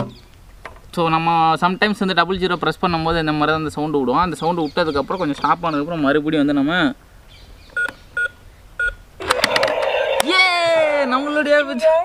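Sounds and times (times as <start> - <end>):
electronic keypad beeps: 7.8 - 9.0
voice: 10.2 - 12.0.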